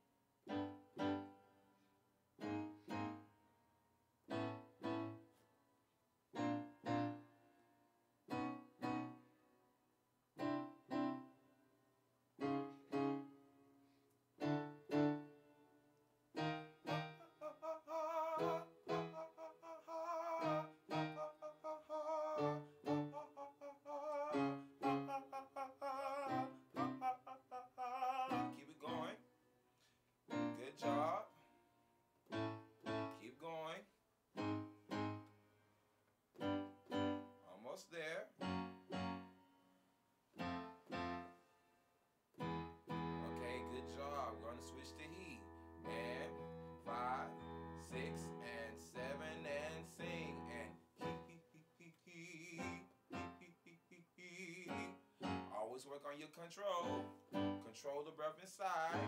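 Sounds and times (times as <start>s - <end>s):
keyboard piano chords: 0.0s - 1.8s, 2.4s - 5.5s, 6.3s - 9.8s, 10.4s - 11.8s, 12.4s - 35.5s, 36.3s - 55.8s, 56.7s - 58.2s
man singing with vibrato: 17.1s - 29.2s, 43.2s - 59.0s.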